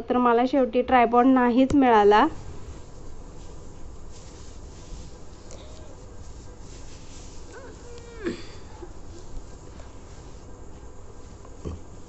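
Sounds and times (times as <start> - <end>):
faint background noise: 0.0 - 12.0
held whine: 2.2 - 12.0.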